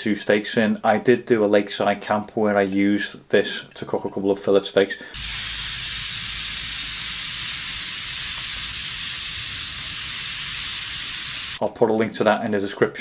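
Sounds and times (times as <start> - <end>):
gas stove rumble: 5.2 - 11.6
steaks sizzling in frying pan: 5.2 - 11.6.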